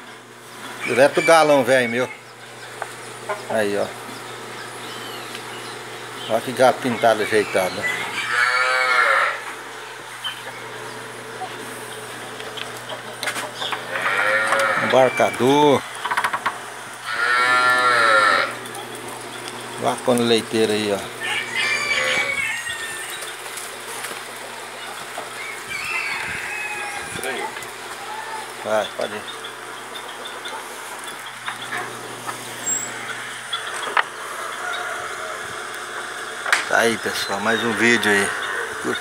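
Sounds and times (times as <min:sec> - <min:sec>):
steady background hiss: 0:00.0 - 0:39.0
chickens clucking: 0:00.5 - 0:39.0
cow mooing: 0:08.2 - 0:09.5, 0:13.9 - 0:15.2, 0:17.0 - 0:18.6, 0:21.3 - 0:22.4.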